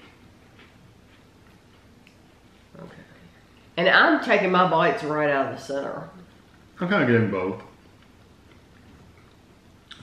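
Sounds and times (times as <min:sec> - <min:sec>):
chewing cookies: 0:00.0 - 0:03.1, 0:07.7 - 0:10.0.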